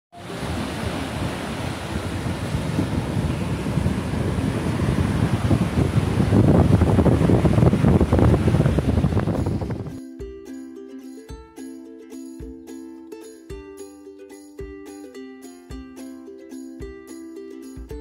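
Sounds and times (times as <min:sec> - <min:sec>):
surf washing onto beach: 0:00.2 - 0:10.0
wind buffeting microphone: 0:00.2 - 0:10.0.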